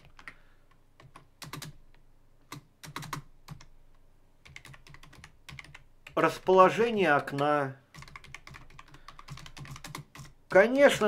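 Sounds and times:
computer keyboard typing: 0:00.0 - 0:00.4, 0:01.0 - 0:01.8, 0:02.5 - 0:03.7, 0:04.4 - 0:11.0.

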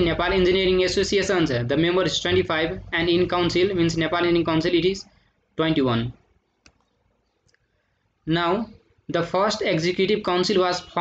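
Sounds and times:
computer mouse clicks: 0:06.5 - 0:07.7.

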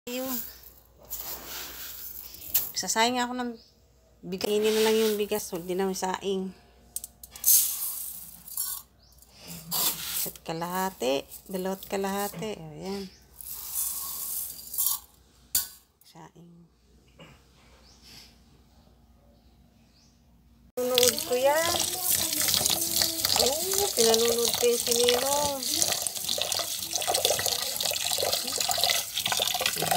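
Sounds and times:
rice grains poured into metal pot: 0:07.4 - 0:08.8, 0:13.4 - 0:15.0, 0:20.9 - 0:29.9.

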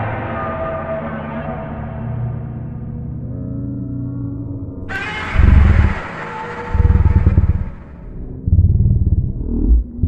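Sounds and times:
low rumbling bursts: 0:04.8 - 0:10.0
monster screeching roar: 0:04.9 - 0:08.2.

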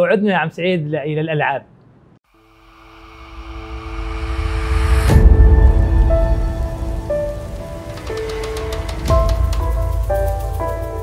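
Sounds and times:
rising whoosh: 0:02.3 - 0:10.9
loud musical hit: 0:02.4 - 0:10.6.

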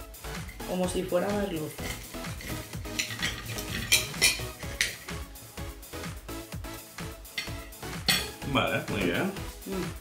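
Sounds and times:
knife and fork scraping plate: 0:01.8 - 0:05.1.

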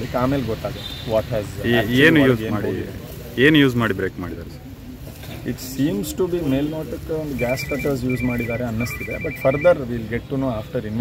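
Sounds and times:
man speaking: 0:05.8 - 0:11.0
phone ringtone beeps: 0:07.4 - 0:09.8.

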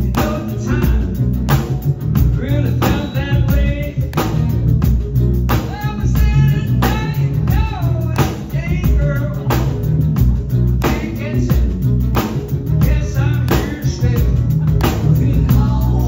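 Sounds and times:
man singing into a microphone: 0:00.0 - 0:01.3, 0:02.3 - 0:04.2, 0:05.7 - 0:09.8, 0:10.8 - 0:11.7, 0:12.8 - 0:16.0
live rock band playing: 0:00.0 - 0:16.0.

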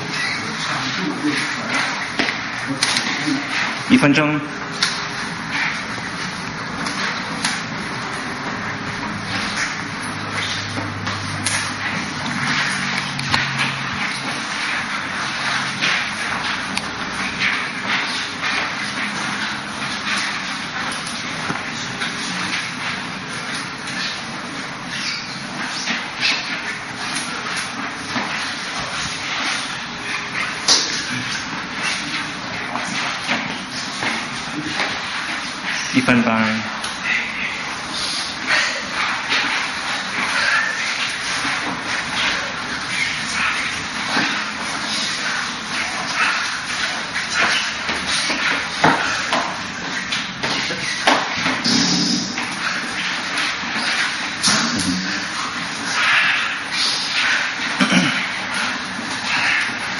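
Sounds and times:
shuffling feet: 0:00.0 - 0:59.9
steady background noise: 0:00.0 - 0:59.9
clothing rustle: 0:04.6 - 0:59.9.

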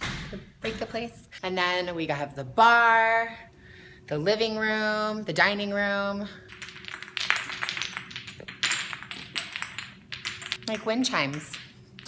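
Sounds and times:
glass spheres clinking: 0:06.4 - 0:12.0.

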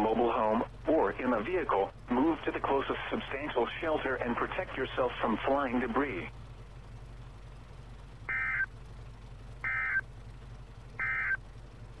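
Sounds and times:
low steady hum: 0:00.0 - 0:12.0
digital data tone bursts: 0:08.3 - 0:08.7, 0:11.0 - 0:11.4.

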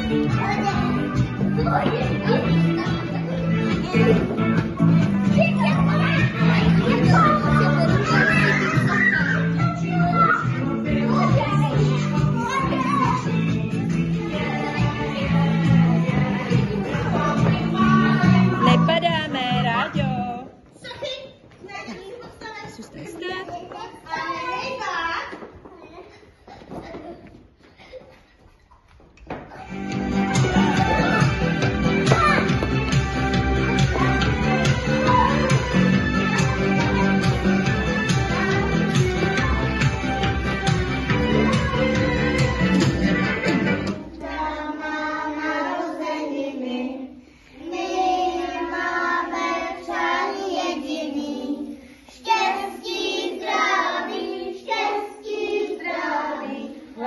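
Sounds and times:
music: 0:00.0 - 0:20.5, 0:29.2 - 0:57.0
young children singing: 0:05.0 - 0:18.9, 0:29.5 - 0:57.0
movement in a room: 0:20.4 - 0:43.1.

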